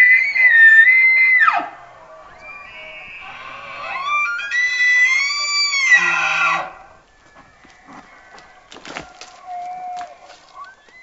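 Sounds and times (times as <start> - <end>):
elk bugling: 0.0 - 11.0.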